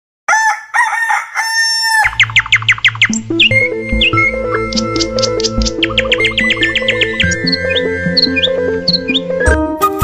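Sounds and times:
rooster crowing: 0.3s - 2.2s.

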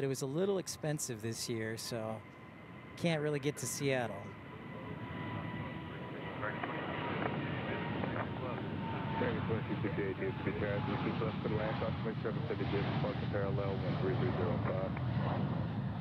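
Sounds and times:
jet engines roaring: 0.0s - 16.0s
thin steady whine: 0.0s - 16.0s.

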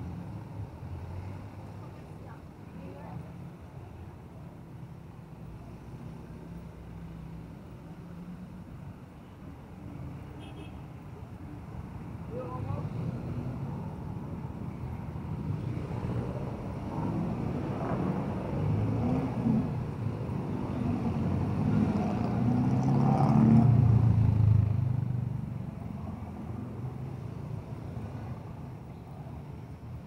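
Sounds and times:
passing motor vehicles: 0.0s - 30.0s.

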